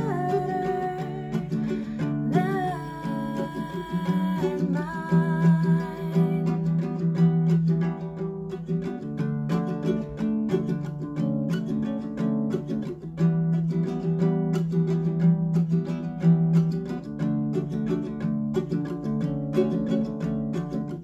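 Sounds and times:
woman singing: 0.0 - 7.1
ukulele strumming: 0.0 - 21.0.

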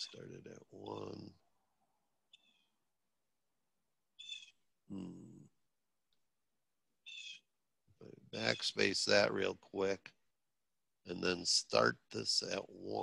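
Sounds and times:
person short low vocal sound: 4.9 - 5.4.

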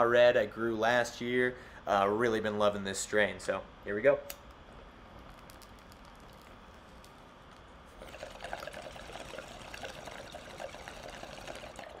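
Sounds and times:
water bubbling in a bong: 8.0 - 12.0.

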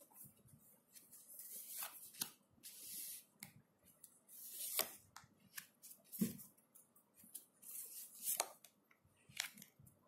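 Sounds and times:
cards sliding against cards: 0.9 - 3.3, 4.3 - 6.2, 7.6 - 8.6.

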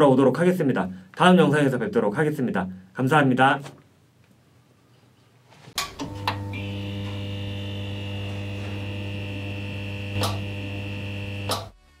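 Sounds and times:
electric mains hum with whine: 5.6 - 11.8
electric crackle: 6.4 - 11.7.

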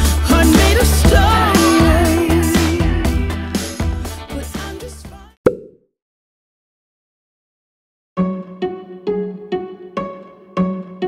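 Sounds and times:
pop song: 0.0 - 5.4.

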